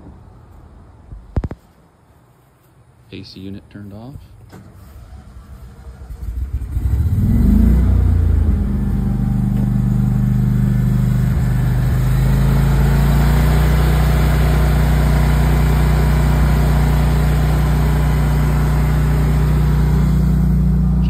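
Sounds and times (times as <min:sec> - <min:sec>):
generator engine starting and running: 0:04.3 - 0:21.0.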